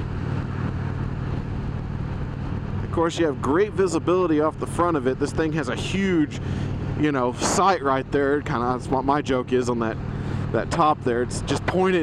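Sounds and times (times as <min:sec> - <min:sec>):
wind noise: 0:00.0 - 0:03.4
motorcycle engine cruising: 0:00.0 - 0:12.0
road noise: 0:00.0 - 0:12.0.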